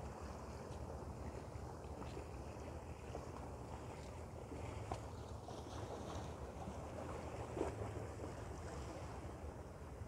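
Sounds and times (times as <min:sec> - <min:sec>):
small water splashes: 0:00.0 - 0:10.0.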